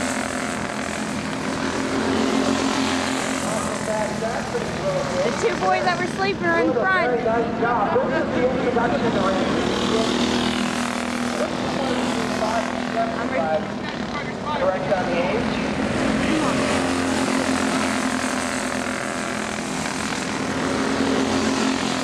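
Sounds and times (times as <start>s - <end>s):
go-kart engines droning: 0.0s - 22.0s
voices: 3.5s - 10.3s, 11.3s - 18.1s.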